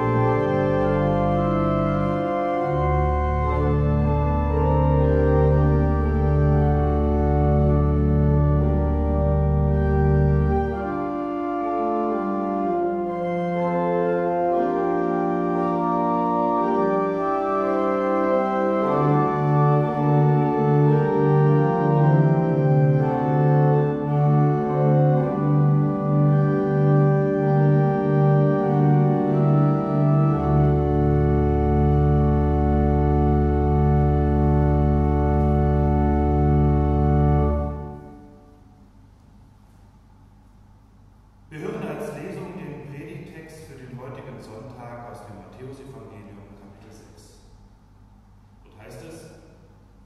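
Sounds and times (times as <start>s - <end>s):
low pulsing organ note: 0.0s - 39.1s
deep organ pedal bass: 0.0s - 39.2s, 41.4s - 47.7s
pipe organ chords: 0.0s - 50.0s.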